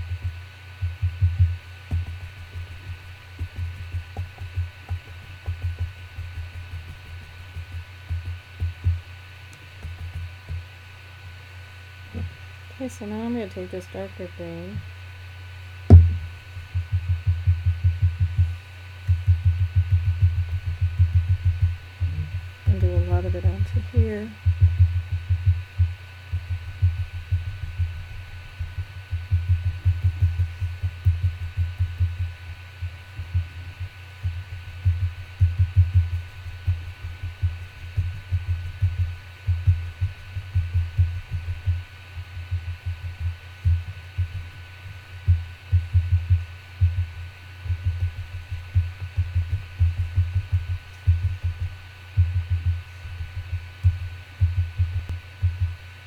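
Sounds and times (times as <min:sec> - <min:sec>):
paintbrush tapping on paper: 0:00.0 - 0:10.7, 0:15.9 - 0:32.4.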